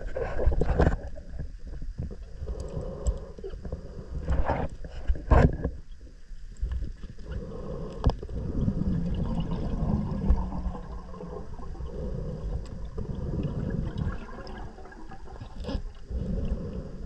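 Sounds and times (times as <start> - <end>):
muffled underwater rumble: 0.0 - 17.0.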